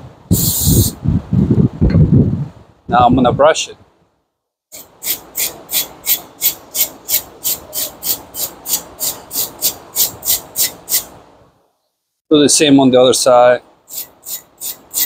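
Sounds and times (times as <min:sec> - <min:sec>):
wire brush scrubbing metal: 0:04.8 - 0:11.1, 0:13.9 - 0:15.0.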